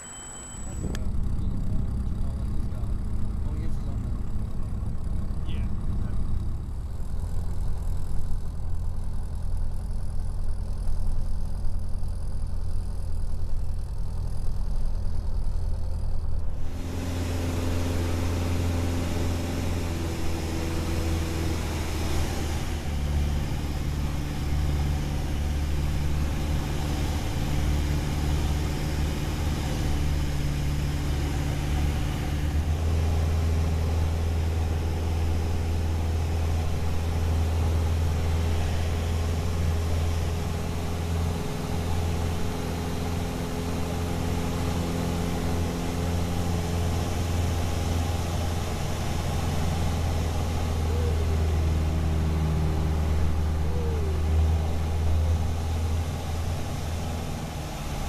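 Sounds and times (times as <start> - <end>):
airplane engine drone: 0.0 - 58.0.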